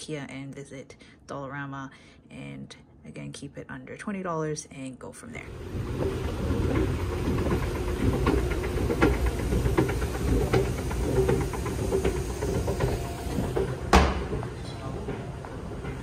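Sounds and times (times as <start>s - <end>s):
escalator rumble and hum: 5.4s - 16.0s
escalator steps clicking: 5.5s - 16.0s
sharp knock: 13.9s - 14.3s.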